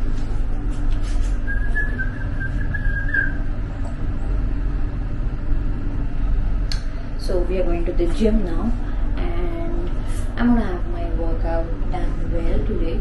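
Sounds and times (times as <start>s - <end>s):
wavering whistle-like tone: 1.4s - 3.5s.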